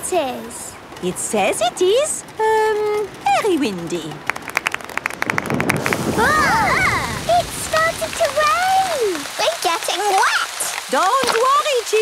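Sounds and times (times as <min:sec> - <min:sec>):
rain hissing: 0:00.0 - 0:12.0
children calling out: 0:06.0 - 0:12.0.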